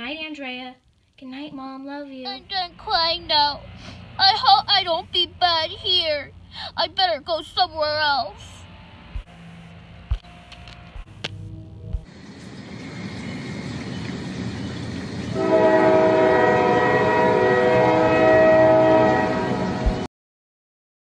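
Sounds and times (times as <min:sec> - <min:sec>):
train rumble: 0:01.4 - 0:20.1
chord-like train horn: 0:15.3 - 0:20.1.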